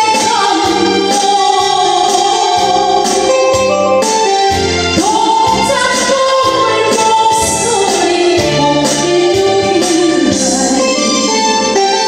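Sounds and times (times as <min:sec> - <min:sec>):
keyboard backing track: 0:00.0 - 0:12.0
woman singing into microphone: 0:00.0 - 0:12.0.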